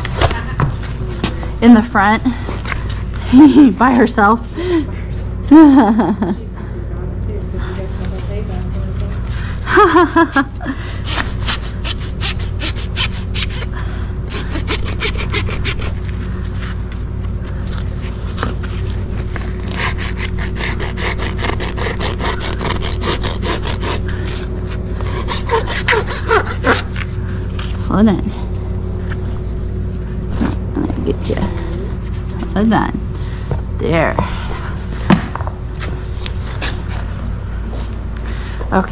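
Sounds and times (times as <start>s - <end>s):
hoof rasp scraping hoof: 11.0s - 28.2s.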